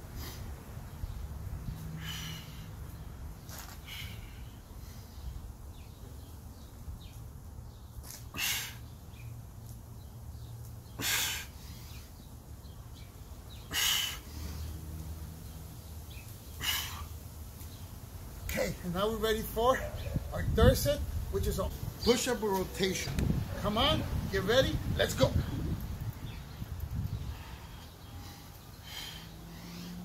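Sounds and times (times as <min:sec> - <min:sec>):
man breathing out hard: 0:27.3 - 0:30.0.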